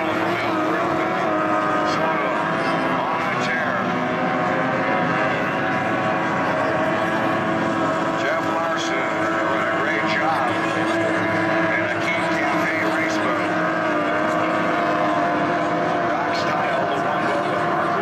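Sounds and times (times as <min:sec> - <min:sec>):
racing boat engines whining: 0:00.0 - 0:18.0.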